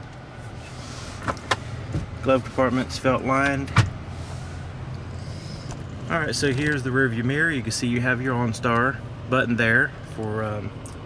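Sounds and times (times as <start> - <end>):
car ventilation hum and hiss: 0.0 - 11.0.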